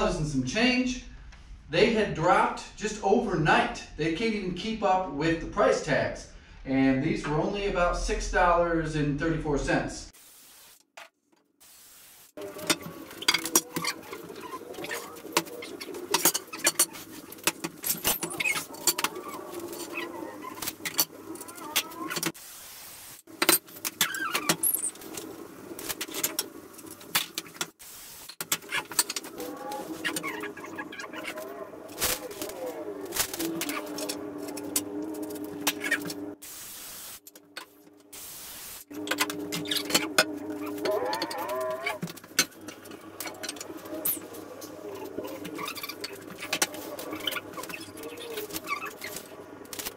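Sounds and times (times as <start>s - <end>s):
steady hiss: 10.2s - 10.9s, 11.6s - 12.5s, 22.4s - 23.4s, 36.4s - 37.3s, 38.1s - 38.9s.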